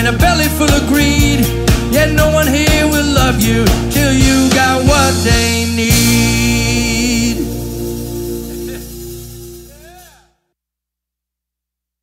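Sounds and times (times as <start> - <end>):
band's ringing chord: 4.6 - 10.2.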